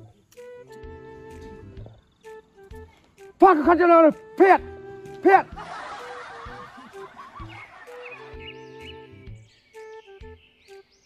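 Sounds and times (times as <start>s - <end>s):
background music: 0.0s - 11.0s
person calling out loudly: 3.4s - 5.6s
crackling laughter effect: 5.5s - 8.2s.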